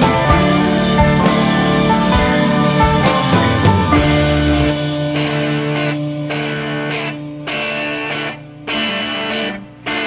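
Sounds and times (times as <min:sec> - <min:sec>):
drum kit steady beat: 0:00.0 - 0:07.6
electric guitars sustaining notes: 0:00.0 - 0:10.0
psychedelic rock band playing: 0:00.0 - 0:10.0.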